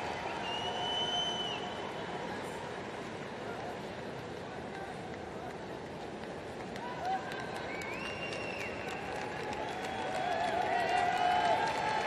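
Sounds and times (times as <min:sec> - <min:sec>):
hum of distant crowd voices: 0:00.0 - 0:12.0.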